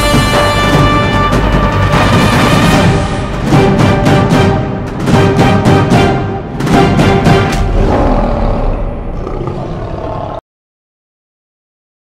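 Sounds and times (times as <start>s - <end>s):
lion roar: 7.6s - 10.4s.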